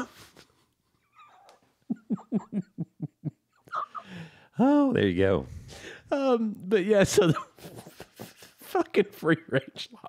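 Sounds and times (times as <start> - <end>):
man laughing: 1.9 - 4.9, 5.7 - 10.0.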